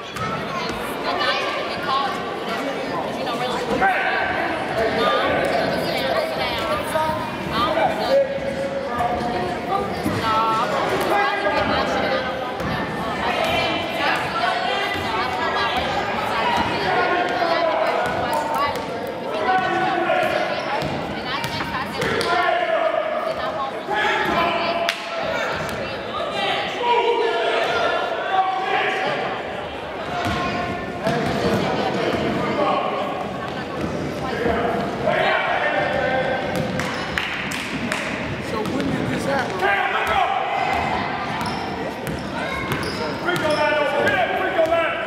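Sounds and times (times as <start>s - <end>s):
players and spectators calling: 22.0s - 33.4s, 34.2s - 45.0s.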